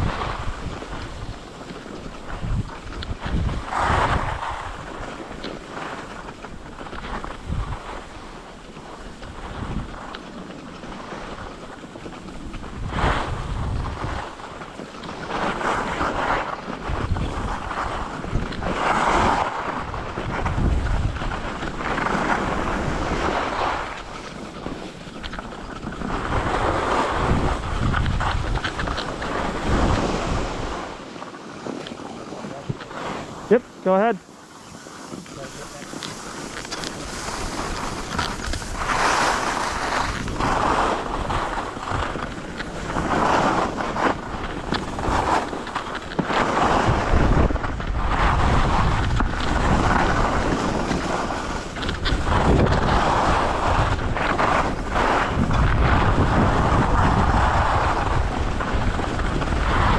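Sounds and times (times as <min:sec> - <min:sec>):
wind buffeting microphone: 0:00.0 - 0:31.2, 0:31.8 - 0:59.9
skis scraping on snow: 0:00.0 - 0:59.9.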